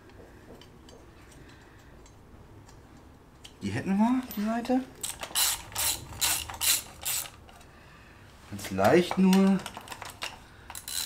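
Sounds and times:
hand ratchet clicking: 5.0s - 7.4s, 9.1s - 11.0s.

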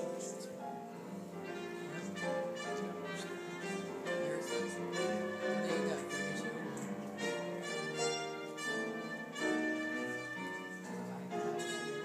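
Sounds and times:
brass backing: 0.0s - 12.0s.

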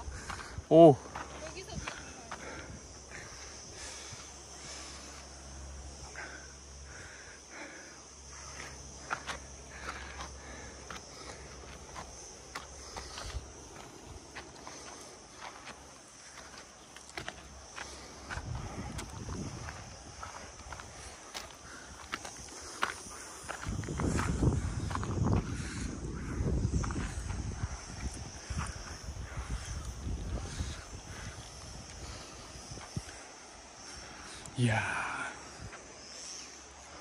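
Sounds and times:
footsteps on stony dirt path: 0.0s - 6.0s, 8.4s - 34.1s
high insect buzz: 0.0s - 37.0s.

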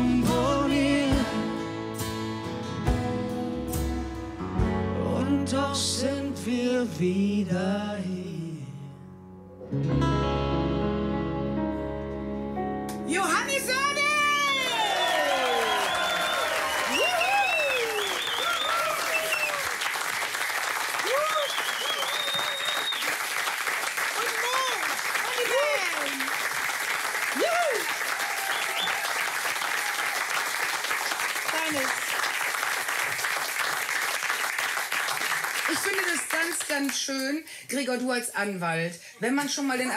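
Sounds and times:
audience clapping: 13.5s - 37.4s
whoops and cheering: 13.8s - 19.8s, 21.0s - 23.2s, 24.2s - 26.3s, 27.3s - 30.3s.

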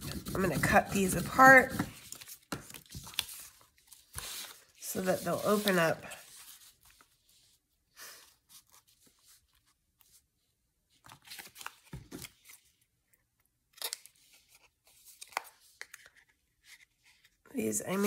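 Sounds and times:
paper rustling: 0.0s - 7.6s.

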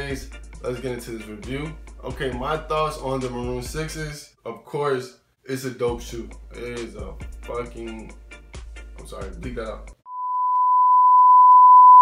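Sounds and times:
censor bleep tone: 10.1s - 12.0s.

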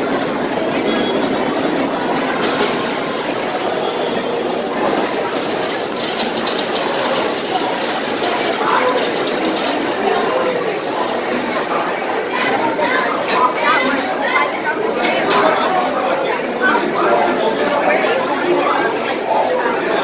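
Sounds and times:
roller coaster rumbling and clattering: 0.0s - 15.4s.

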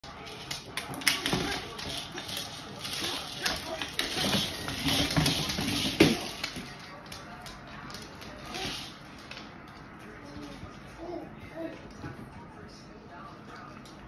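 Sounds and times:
kibble rattling inside ball: 0.1s - 10.8s
ball rolling on hardwood floor: 0.3s - 10.8s.

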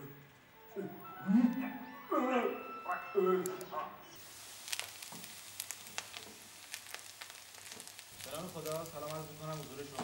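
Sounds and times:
food sizzling in a frying pan: 4.2s - 10.0s.

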